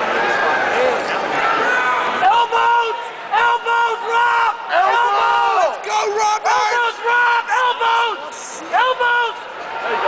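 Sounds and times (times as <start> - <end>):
arena crowd noise: 0.0 - 10.0
spectator yelling: 1.2 - 10.0.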